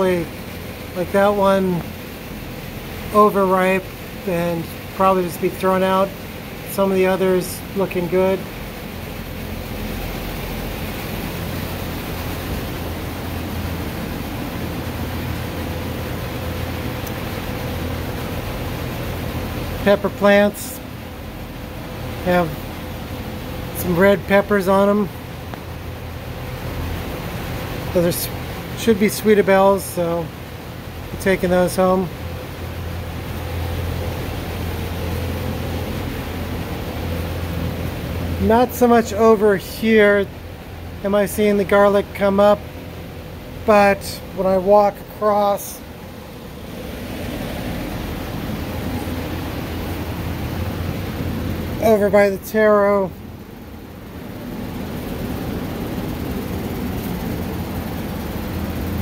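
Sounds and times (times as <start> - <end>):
fan running: 0.0 - 59.0
low machine hum: 0.0 - 59.0.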